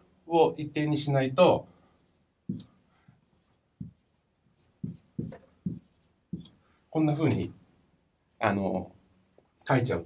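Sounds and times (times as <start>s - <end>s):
marker scratching on whiteboard: 1.9s - 6.6s.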